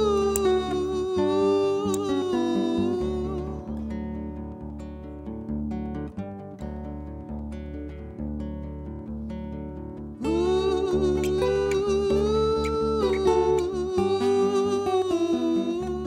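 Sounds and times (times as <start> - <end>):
man singing a long note: 0.0 - 3.8, 10.2 - 16.0
acoustic guitar playing: 0.0 - 16.0.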